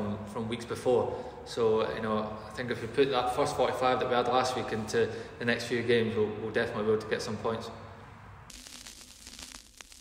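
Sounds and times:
faint static hiss: 8.4s - 10.0s
small crackles: 8.5s - 10.0s.

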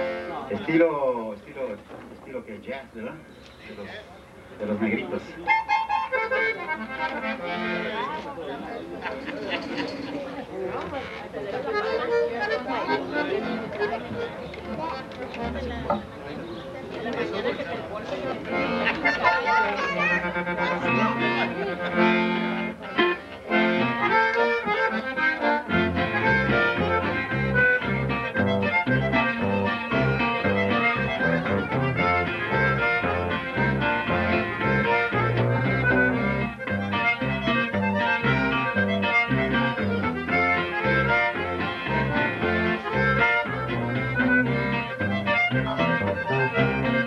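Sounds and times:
accordion melody: 0.0s - 1.2s, 4.5s - 47.0s
bajo sexto: 3.2s - 47.0s
electric bass: 23.5s - 47.0s.

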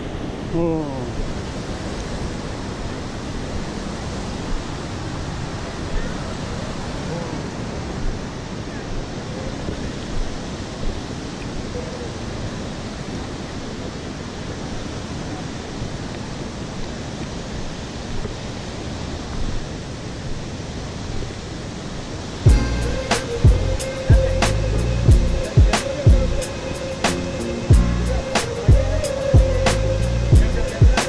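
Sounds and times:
steady outdoor rushing noise: 0.0s - 31.0s.

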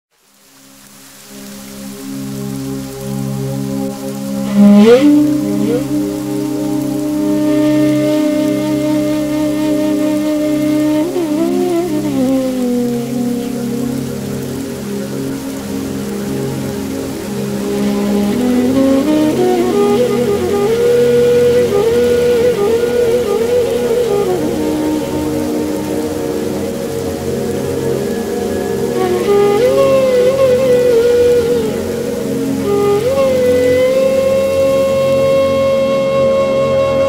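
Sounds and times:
rain patter: 0.1s - 37.0s
calm flute melody: 0.2s - 37.0s.

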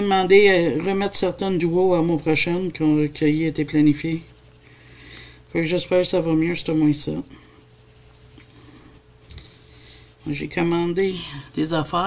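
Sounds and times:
faint pencil shading on paper: 2.0s - 12.0s.

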